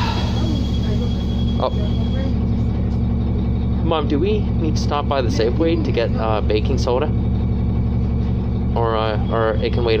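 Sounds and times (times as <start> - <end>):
bus engine drone: 0.0 - 10.0.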